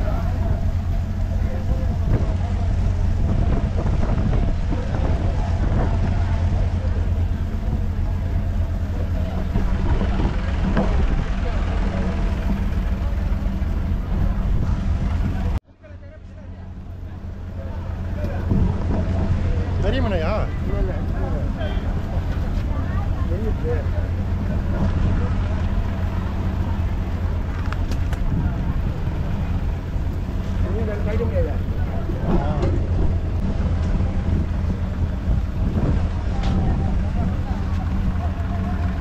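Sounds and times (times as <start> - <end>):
boat engine low rumble: 0.0 - 39.0.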